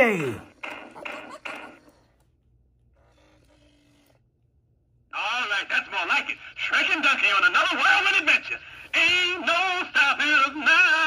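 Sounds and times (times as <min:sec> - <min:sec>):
faint steady hum: 0:02.1 - 0:11.0.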